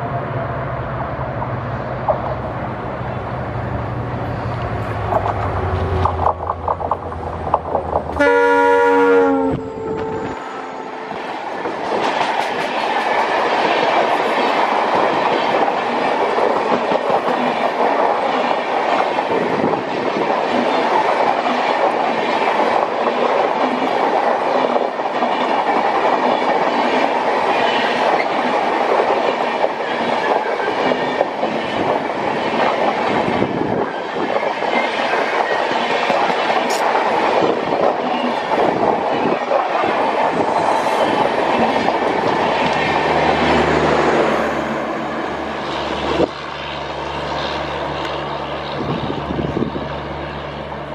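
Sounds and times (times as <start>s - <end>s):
train wheels rumbling on rails: 0.0s - 50.9s
clickety-clack over rail joints: 1.4s - 2.6s, 4.6s - 8.7s, 11.2s - 44.4s.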